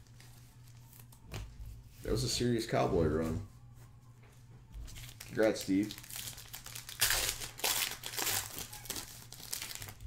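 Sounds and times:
foil wrapper crinkling: 4.9s - 10.0s.

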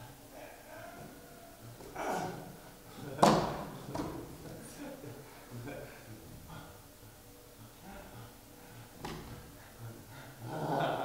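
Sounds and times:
person growling like a dog: 10.4s - 11.0s.

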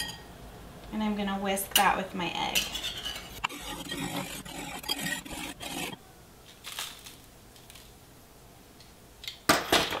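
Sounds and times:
plastic pouch rustling: 6.4s - 7.9s.

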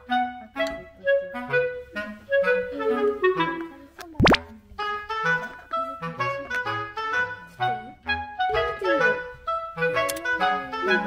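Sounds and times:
music with held notes: 0.0s - 11.0s
upward-sweeping plop effect: 4.2s - 4.5s.

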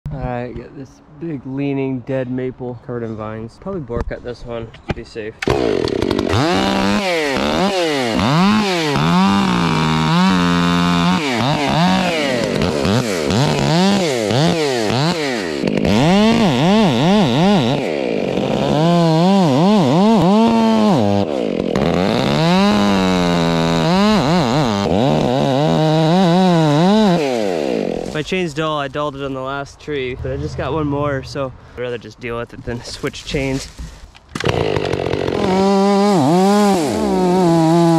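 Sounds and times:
chainsaw engine revving: 5.4s - 28.4s, 33.8s - 37.9s.

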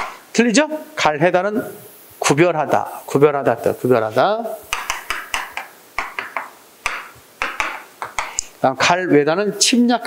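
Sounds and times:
chalk tapping on chalkboard: 0.0s - 0.2s, 4.6s - 8.6s.

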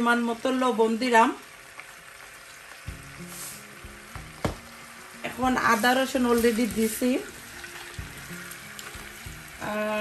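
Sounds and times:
ghee sizzling in a pot: 0.0s - 10.0s.

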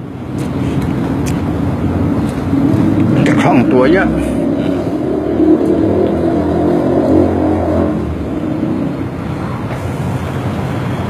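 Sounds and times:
low motor-like rumble: 0.0s - 10.5s.

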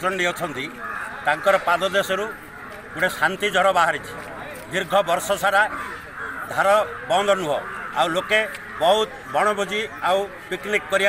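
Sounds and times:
man talking into microphone: 6.5s - 11.0s.

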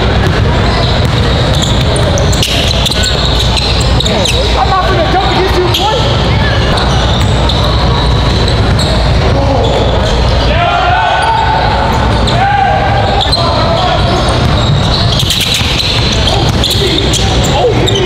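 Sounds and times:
basketball bouncing on court: 0.0s - 4.1s, 14.1s - 17.5s.

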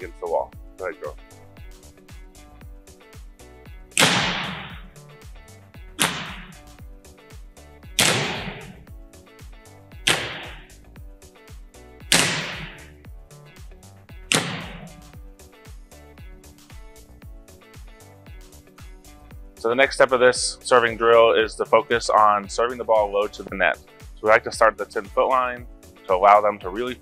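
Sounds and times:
faint background music: 0.0s - 27.0s
ball hitting gym wall: 3.9s - 5.0s, 6.0s - 6.8s, 7.9s - 8.9s, 10.0s - 10.8s, 12.1s - 13.0s, 14.3s - 15.2s
hand smacking volleyball: 4.0s - 4.9s, 6.0s - 6.6s, 8.0s - 8.9s, 10.0s - 10.8s, 12.1s - 12.9s, 14.3s - 15.1s.

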